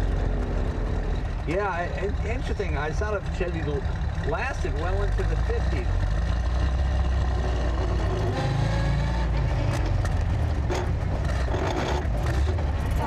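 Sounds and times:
car engine rumble: 0:00.0 - 0:13.0
road noise: 0:00.0 - 0:13.0.

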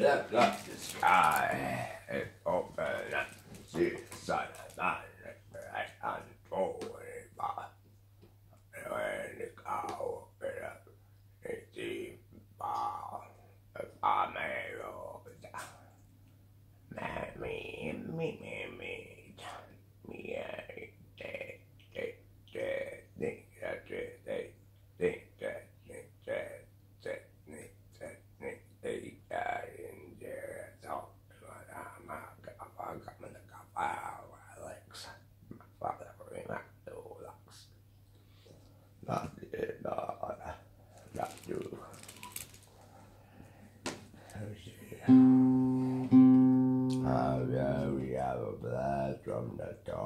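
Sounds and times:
person's short vocal sounds: 0:00.0 - 0:04.9
steady low hum: 0:00.0 - 0:07.9, 0:08.5 - 0:16.0, 0:42.8 - 0:50.0
soft handling sounds: 0:00.3 - 0:01.6, 0:02.2 - 0:04.9, 0:40.9 - 0:44.4
plucked guitar notes: 0:45.1 - 0:47.9.

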